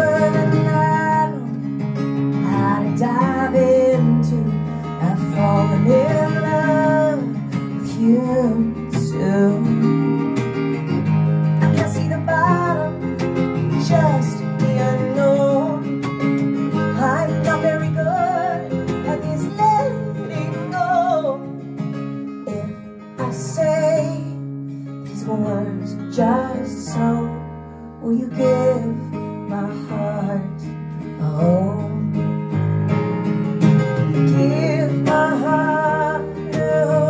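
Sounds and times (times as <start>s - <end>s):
woman singing: 0.0s - 1.7s, 2.3s - 10.3s, 11.6s - 16.0s, 16.7s - 21.6s, 22.4s - 24.5s, 25.1s - 32.3s, 34.2s - 37.0s
strummed acoustic guitar: 0.0s - 37.0s.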